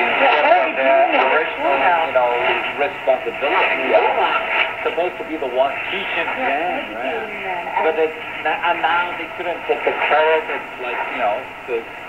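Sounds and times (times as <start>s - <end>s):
shortwave radio talk: 0.0s - 11.9s.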